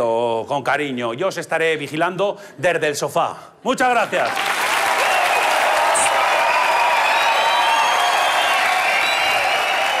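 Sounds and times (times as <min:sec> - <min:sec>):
audience applauding and cheering: 0:04.2 - 0:10.0.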